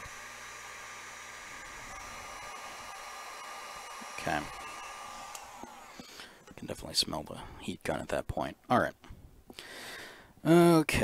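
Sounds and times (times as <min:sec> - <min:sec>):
heat gun fan whining: 0:00.0 - 0:07.7.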